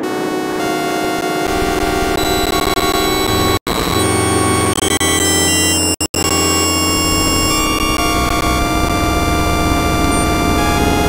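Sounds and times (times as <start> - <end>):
noisy synthesizer drone: 0.0 - 11.0.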